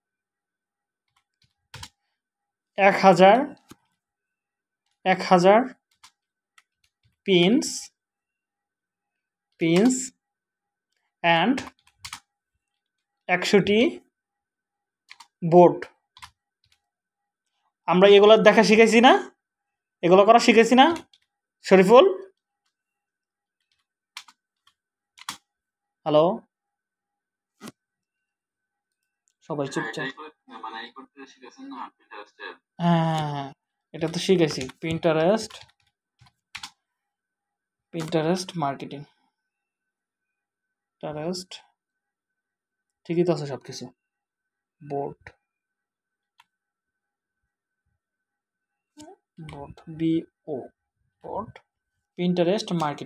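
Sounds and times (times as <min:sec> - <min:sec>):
keyboard keystrokes: 0:01.1 - 0:02.0, 0:15.1 - 0:15.3, 0:23.7 - 0:24.4, 0:25.2 - 0:25.4, 0:34.0 - 0:36.8
man saying a word: 0:29.5 - 0:32.6.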